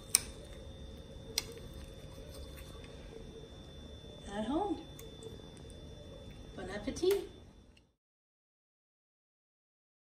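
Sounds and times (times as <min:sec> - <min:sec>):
faint steady hum: 0:00.0 - 0:08.0.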